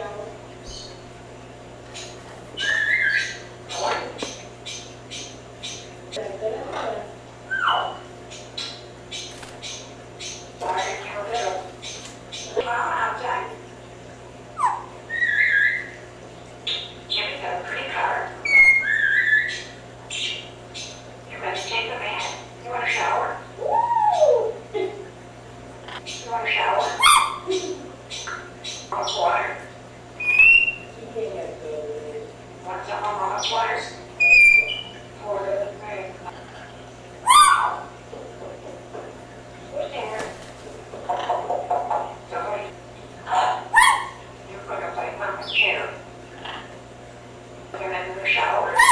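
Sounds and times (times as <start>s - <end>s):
parrot whistling: 2.6s - 3.4s, 7.5s - 8.0s, 14.6s - 16.0s, 18.4s - 19.7s, 26.9s - 27.5s, 30.2s - 30.9s, 34.2s - 34.9s, 37.2s - 37.8s, 43.7s - 44.2s
parrot call rising and falling: 37.2s - 37.8s
parrot mumbled chatter: 40.9s - 42.6s.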